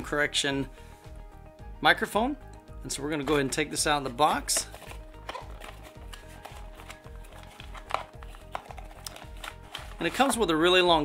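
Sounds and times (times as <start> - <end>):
soft background music with beat: 0.0 - 11.0.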